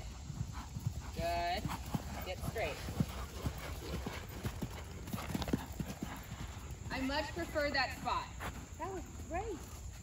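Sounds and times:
horse hoofbeats on sand: 0:00.0 - 0:10.0.

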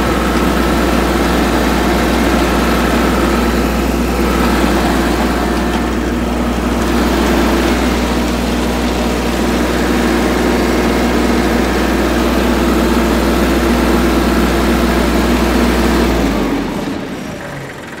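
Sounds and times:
tractor engine running: 0:00.0 - 0:18.0.

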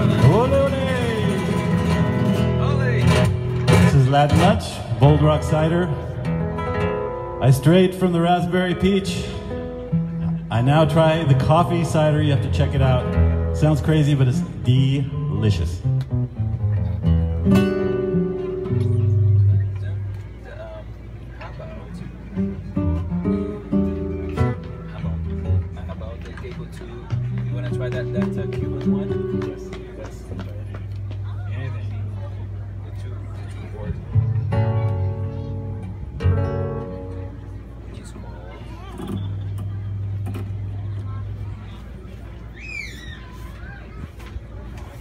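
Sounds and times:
nylon-string guitars playing rumba: 0:00.0 - 0:41.9.

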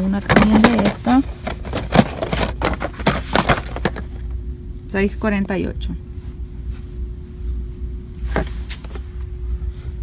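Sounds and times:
cardboard boxes scraping and knocking: 0:00.2 - 0:04.0.

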